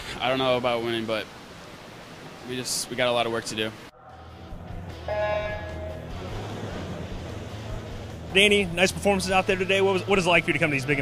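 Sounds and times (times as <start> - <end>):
low hubbub of pool hall: 3.9 - 11.0.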